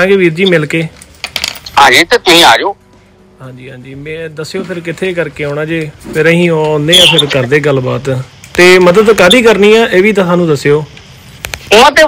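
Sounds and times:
person speaking over phone call: 1.7 - 2.8, 6.8 - 7.8.

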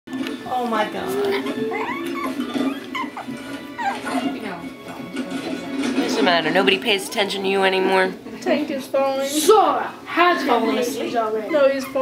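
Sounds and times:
background music: 0.1 - 8.2
puppies crying while playing: 0.7 - 5.3, 11.3 - 12.0.

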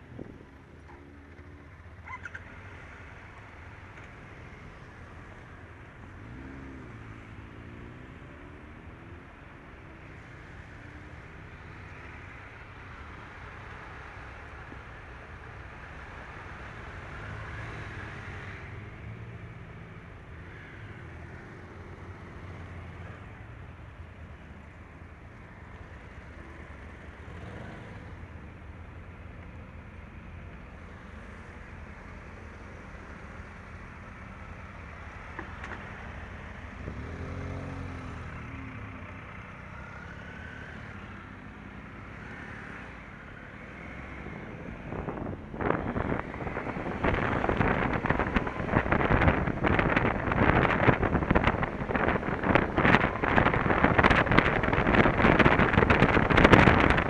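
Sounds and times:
motorcycle engines rumbling: 0.0 - 57.0.

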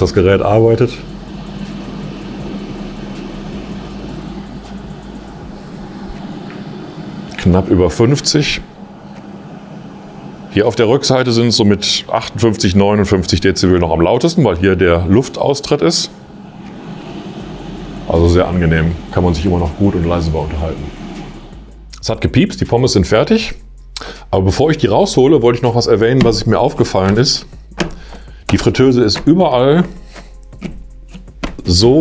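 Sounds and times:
air fryer fan whirring: 0.0 - 32.0
low constant hum: 0.0 - 32.0.

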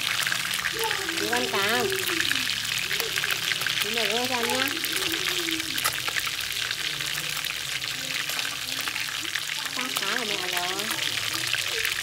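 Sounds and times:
fish frying in hot oil: 0.0 - 12.0.

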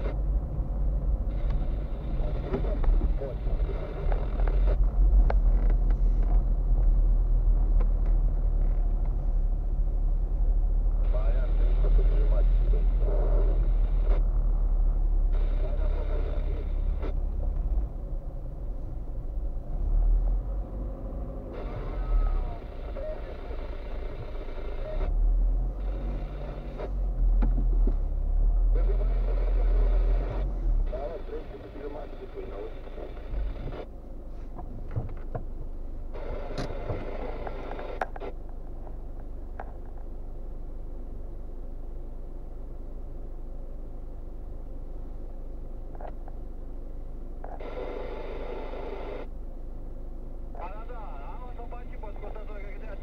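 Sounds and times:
car engine and road rumble: 0.0 - 53.0.

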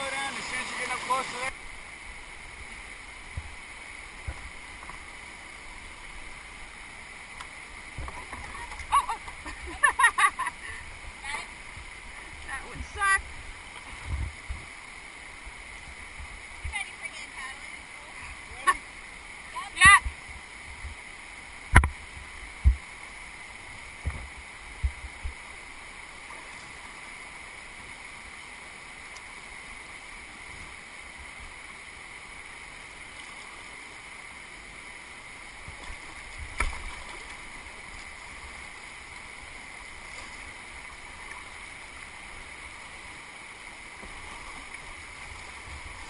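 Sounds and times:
floodwater rushing: 0.0 - 14.2, 31.9 - 46.0.

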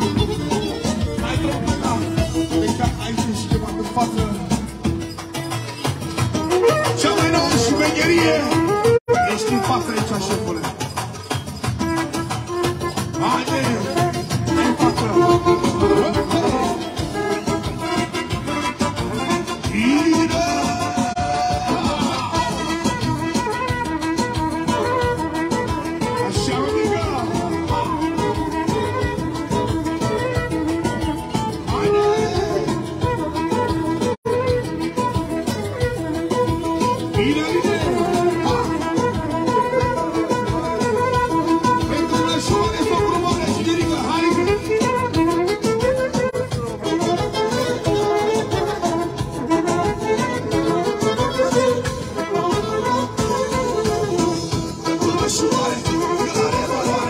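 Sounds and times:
acoustic-electric guitar: 0.0 - 57.0
steady drum beat: 0.0 - 57.0
trumpet melody: 0.0 - 57.0.

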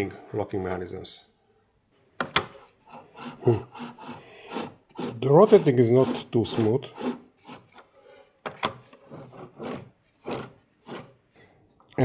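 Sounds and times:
cardboard spool scraping on rollers: 2.8 - 7.9, 9.0 - 11.2.

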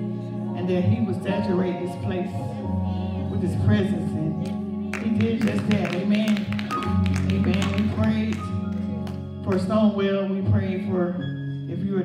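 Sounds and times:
organ holding low chords: 0.0 - 12.0.

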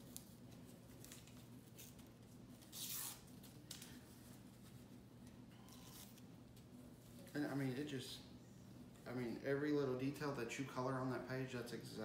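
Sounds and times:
paper crackling and rustling: 0.0 - 4.9
paper ripping: 0.9 - 3.8, 5.7 - 6.2.

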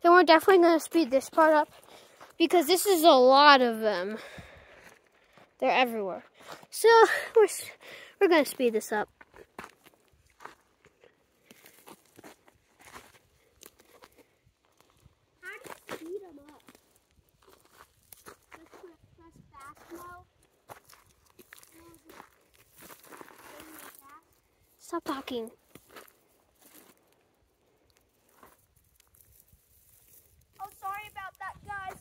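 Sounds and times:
footsteps crunching on gravel: 8.4 - 32.0.

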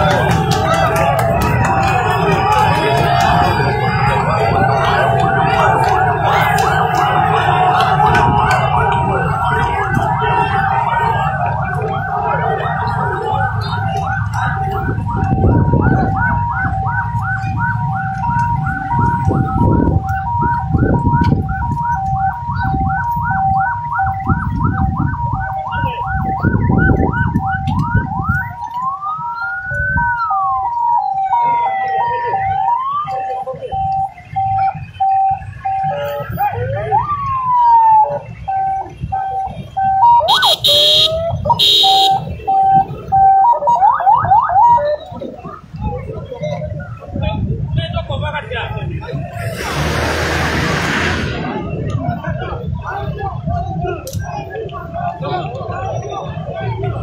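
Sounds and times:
fast yelping siren: 0.0 - 47.2
two-tone hi-lo siren: 0.0 - 47.2
wailing siren: 0.0 - 47.7, 49.0 - 57.0
short loud siren blasts: 33.8 - 44.8.

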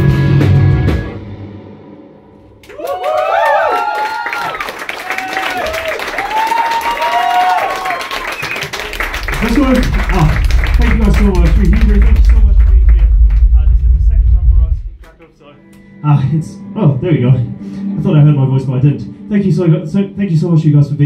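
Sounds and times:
metal band playing: 0.0 - 2.2, 8.8 - 20.6
audience cheering and clapping: 2.6 - 13.9
loud low hum from speakers: 8.8 - 15.2.

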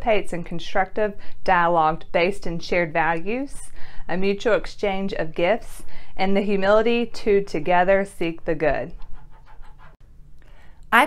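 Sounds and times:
woman speaking: 0.0 - 9.0.

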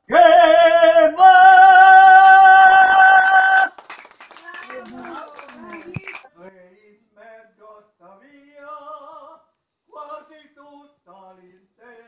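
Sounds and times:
light applause: 2.1 - 6.3
voices: 4.3 - 6.4.

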